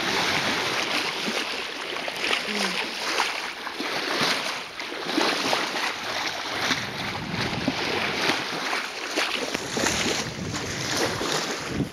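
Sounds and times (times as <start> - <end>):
water splashing along boat hull: 0.0 - 11.9
wind buffeting microphone: 6.0 - 8.6, 9.4 - 11.9.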